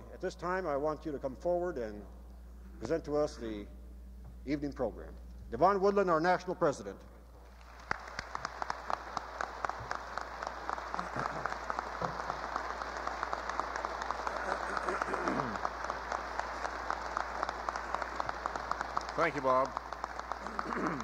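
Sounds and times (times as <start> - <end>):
audience applauding: 7.5 - 21.0.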